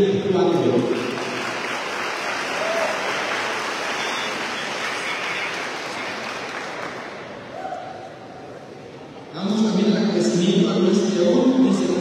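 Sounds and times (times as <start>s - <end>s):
audience applauding: 0.9s - 7.4s.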